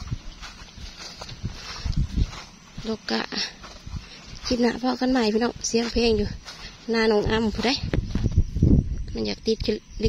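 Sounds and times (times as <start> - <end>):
footsteps on grass: 0.0 - 9.3
person speaking: 4.4 - 8.0
low thumps on microphone: 7.2 - 9.2.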